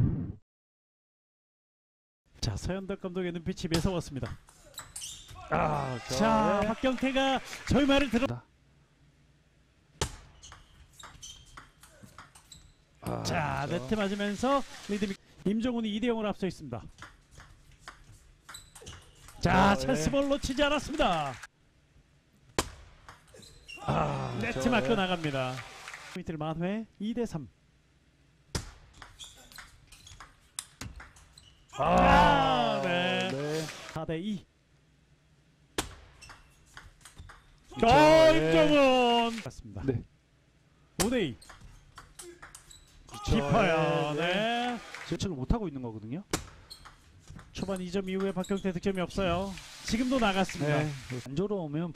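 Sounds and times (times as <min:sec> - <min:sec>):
man commentating: 0:05.4 - 0:08.4, 0:13.0 - 0:16.3, 0:19.4 - 0:21.5, 0:23.9 - 0:26.4, 0:31.8 - 0:34.4, 0:37.8 - 0:39.9, 0:43.2 - 0:45.7, 0:50.0 - 0:51.9.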